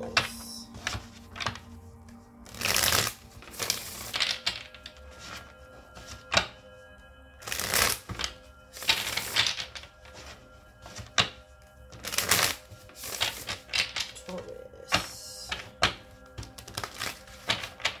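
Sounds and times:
cards being shuffled: 0.0s - 6.6s, 7.4s - 14.3s, 14.9s - 18.0s
cards snapping: 2.5s - 4.8s, 7.4s - 9.7s, 12.0s - 14.2s, 14.9s - 18.0s.

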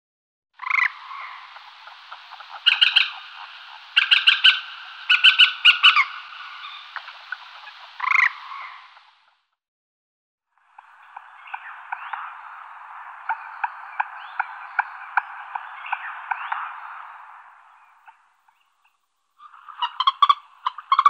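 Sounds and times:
frogs croaking: 0.6s - 9.4s, 10.6s - 21.0s
faint steady background noise: 0.6s - 9.5s, 10.5s - 21.0s.

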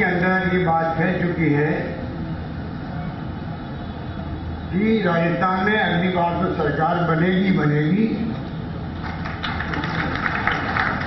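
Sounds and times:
audience clapping: 9.0s - 11.0s.

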